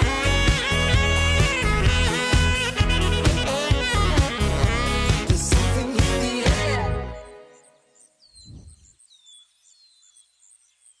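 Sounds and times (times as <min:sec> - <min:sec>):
bird chirping: 0:07.2 - 0:11.0
falling bird whistles: 0:08.2 - 0:09.4.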